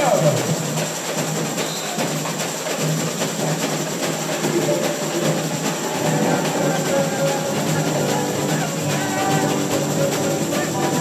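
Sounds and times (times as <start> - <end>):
drums and hand percussion: 0.0 - 11.0
string accompaniment: 3.9 - 11.0.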